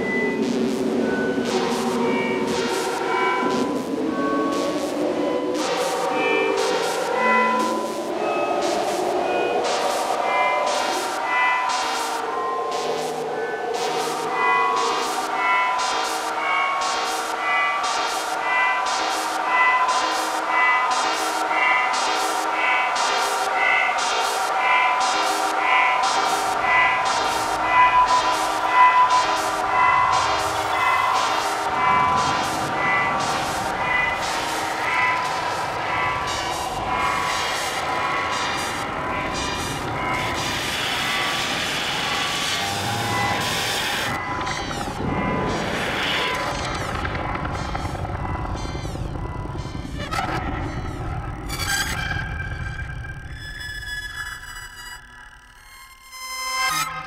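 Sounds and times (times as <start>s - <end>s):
repeated synthesizer pulse: 0.0s - 57.0s
synthesizer drone tones: 0.0s - 57.0s
deep noisy rumble: 26.4s - 54.1s.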